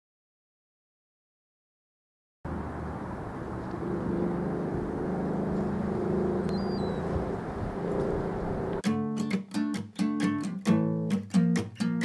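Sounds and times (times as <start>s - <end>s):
low humming drone: 2.5s - 8.8s
wash of noise: 2.5s - 8.8s
short high chirp: 6.5s - 7.0s.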